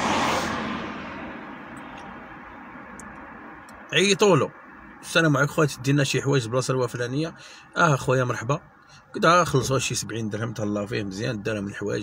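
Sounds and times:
car passing by: 0:00.0 - 0:02.2.

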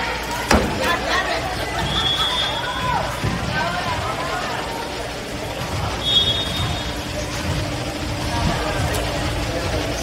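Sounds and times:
voices chattering and calling out: 0:00.0 - 0:10.0
referee whistle blast: 0:06.0 - 0:06.6.

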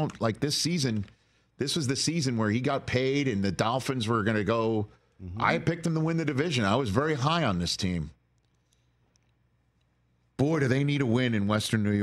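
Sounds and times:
faint small clicks: 0:08.3 - 0:10.0.

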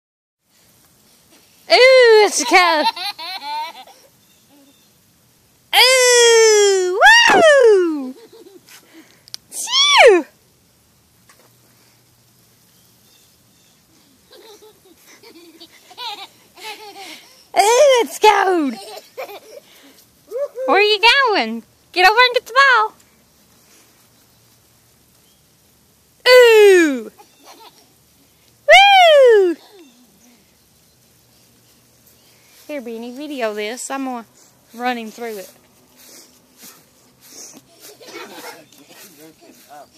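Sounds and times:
excited high-pitched vocal squeal: 0:05.8 - 0:08.2, 0:09.6 - 0:10.3, 0:26.3 - 0:27.2, 0:28.7 - 0:30.0
toddler shrieking with laughter: 0:05.8 - 0:08.2, 0:09.6 - 0:10.2, 0:28.7 - 0:30.0.

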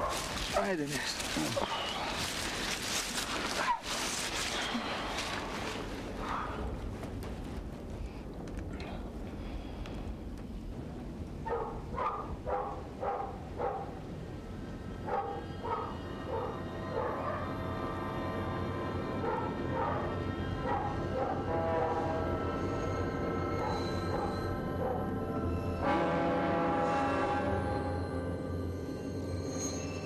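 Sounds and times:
eerie film score: 0:00.1 - 0:30.0
dog barking: 0:11.4 - 0:14.0, 0:15.1 - 0:17.6, 0:19.2 - 0:21.5.

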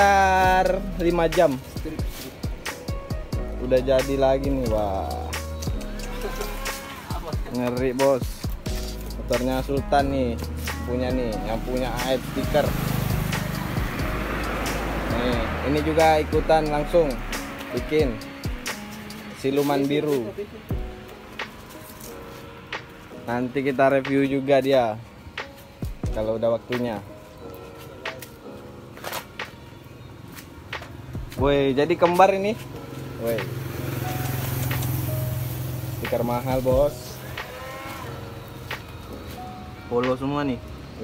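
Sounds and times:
background music: 0:00.0 - 0:41.0
vehicle engine rumble: 0:08.8 - 0:18.9, 0:30.1 - 0:37.1.

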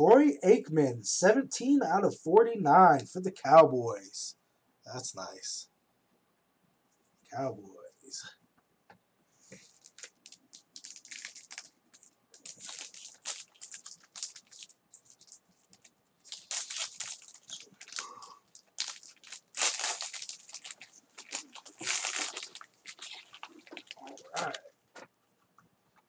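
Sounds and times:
foil wrapper crinkling and tearing: 0:09.6 - 0:24.6.

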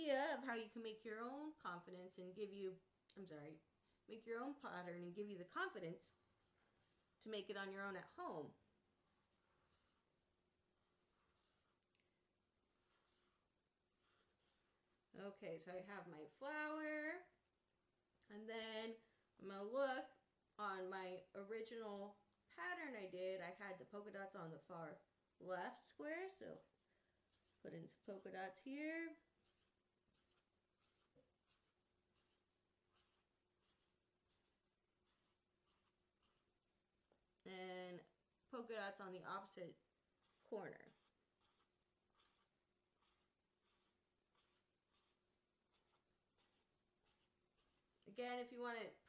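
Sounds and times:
pen scratching on paper: 0:04.2 - 0:15.2, 0:26.2 - 0:37.2, 0:39.0 - 0:48.6.

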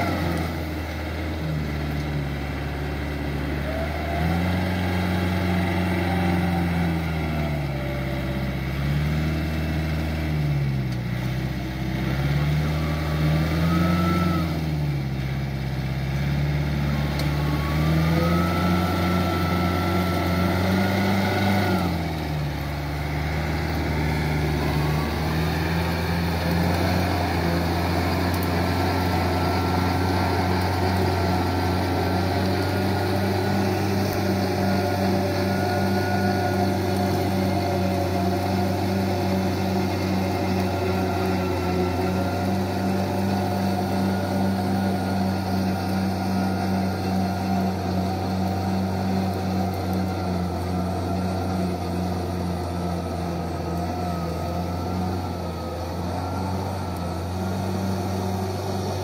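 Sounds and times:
tractor diesel engine under load: 0:00.0 - 0:59.0.

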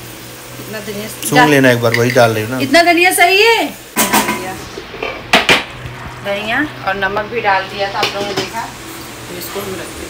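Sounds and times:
kitchen utensils knocking and clinking: 0:01.8 - 0:02.4, 0:04.0 - 0:05.7.

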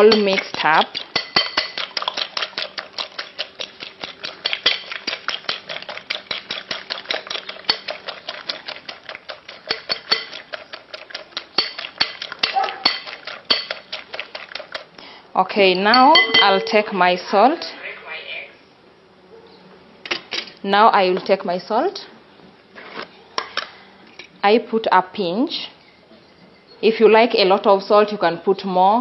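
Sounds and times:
fork beating eggs in glass bowl: 0:00.0 - 0:15.0, 0:15.7 - 0:16.8.

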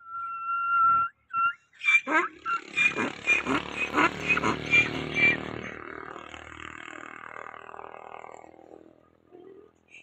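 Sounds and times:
donkey braying: 0:01.8 - 0:05.8.

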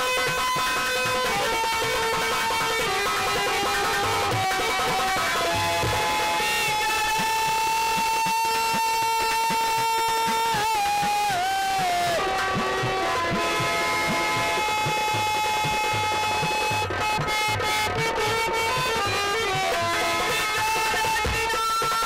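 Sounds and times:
hand drum strokes: 0:00.0 - 0:22.0.

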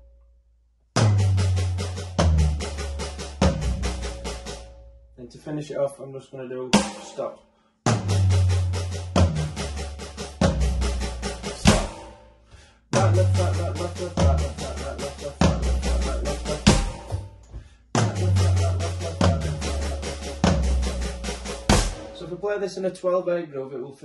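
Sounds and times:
electronic drum kit strokes: 0:01.0 - 0:04.8, 0:06.8 - 0:22.9.

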